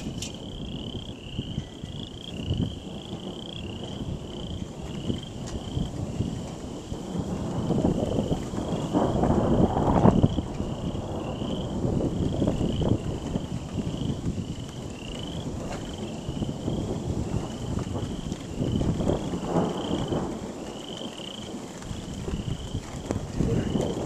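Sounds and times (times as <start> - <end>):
frogs chirping: 0.0 - 24.0
rolling thunder: 0.0 - 24.0.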